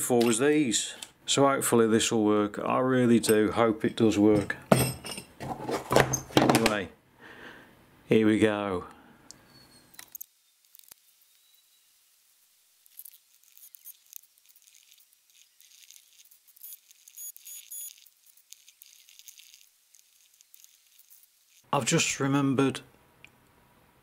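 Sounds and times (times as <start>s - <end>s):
crackling and rustling of gloved hands: 12.7s - 21.7s.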